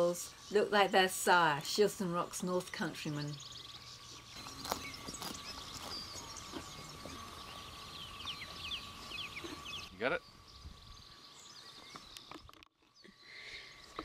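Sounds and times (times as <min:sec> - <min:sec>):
small birds singing: 0:00.0 - 0:14.0.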